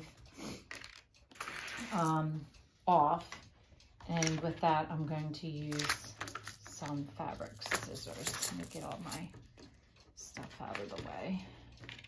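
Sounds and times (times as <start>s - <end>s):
craft supplies clicking and rustling: 5.7s - 9.4s.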